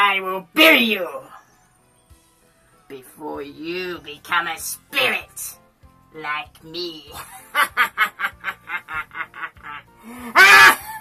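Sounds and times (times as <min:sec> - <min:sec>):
person laughing: 0:07.2 - 0:11.0.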